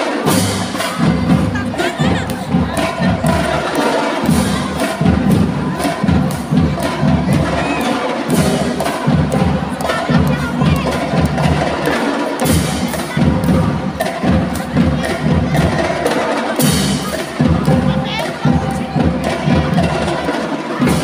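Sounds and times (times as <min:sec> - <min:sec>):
children shouting: 0:00.0 - 0:11.8
marching band drums: 0:00.0 - 0:21.0.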